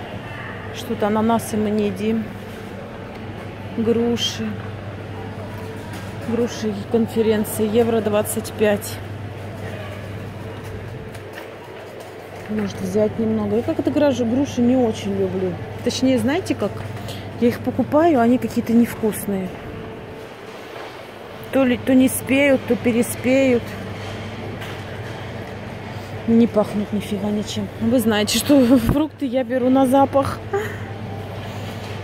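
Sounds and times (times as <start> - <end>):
steady low hum: 0.0 - 32.0
store noise: 0.0 - 32.0.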